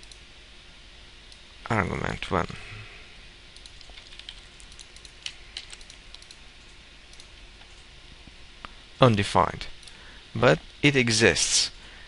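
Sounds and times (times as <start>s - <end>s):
computer keyboard typing: 3.6s - 7.9s.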